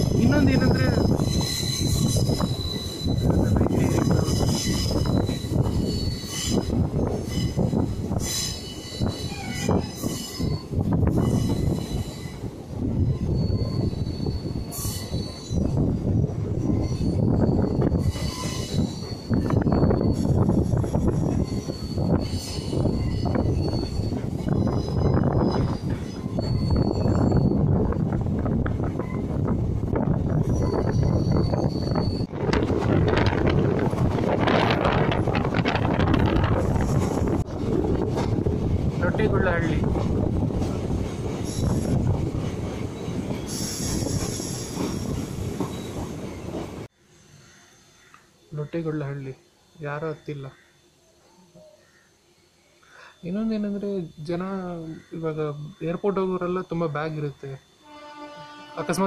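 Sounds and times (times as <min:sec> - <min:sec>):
wheels rumbling on rails: 0:00.0 - 0:47.0
high-pitched wheel squeal: 0:00.9 - 0:12.4, 0:13.0 - 0:28.0, 0:30.3 - 0:32.3.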